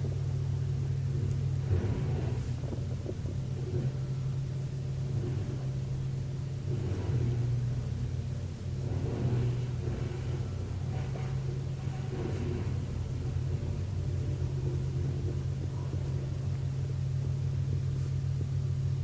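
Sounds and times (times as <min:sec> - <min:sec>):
low rumbling hum: 0:00.0 - 0:19.0.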